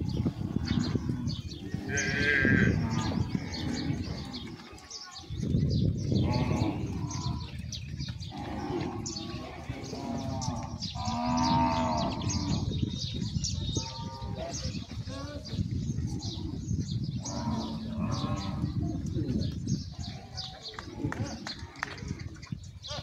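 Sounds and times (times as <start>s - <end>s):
cattle mooing: 0.6s - 4.5s, 8.3s - 12.7s.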